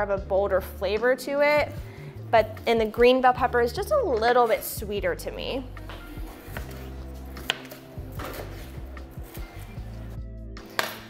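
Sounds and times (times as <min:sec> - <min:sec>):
background music: 0:00.0 - 0:11.0
knife cutting on plastic board: 0:06.0 - 0:09.8.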